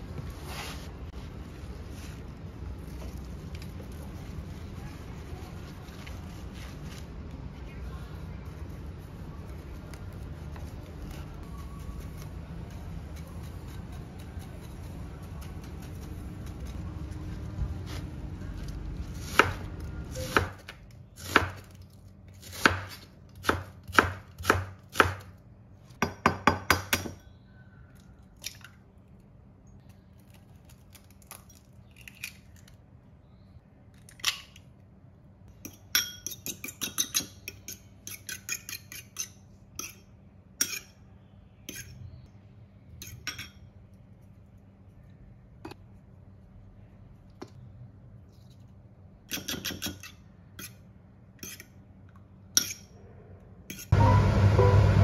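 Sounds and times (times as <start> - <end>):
knife chopping on wooden board: 19.2 - 21.6, 22.5 - 25.3.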